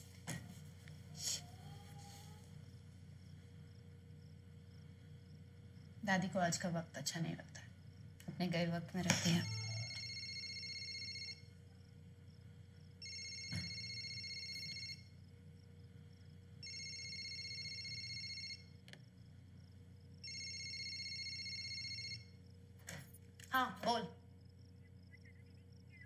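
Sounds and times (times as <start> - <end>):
mobile phone ringing: 9.4 - 11.5, 13.0 - 15.1, 16.6 - 18.8, 20.2 - 22.4
click: 18.8 - 19.0.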